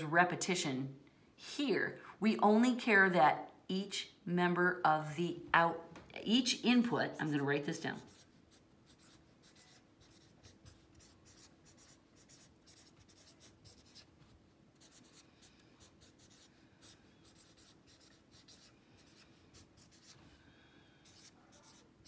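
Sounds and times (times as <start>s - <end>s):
pen scratching on paper: 8.0s - 14.1s, 14.8s - 20.2s, 21.0s - 22.0s.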